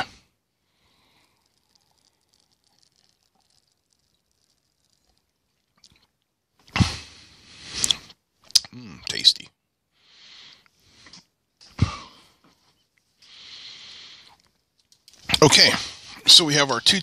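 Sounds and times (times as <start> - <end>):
noisy slurp: 0.8 - 6.1
person sipping and swallowing: 0.8 - 6.8.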